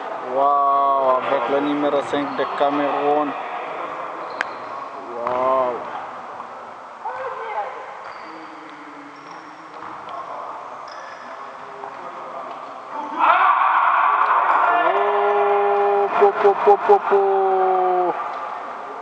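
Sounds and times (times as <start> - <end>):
man's drawn-out exclamation: 14.9 - 18.2.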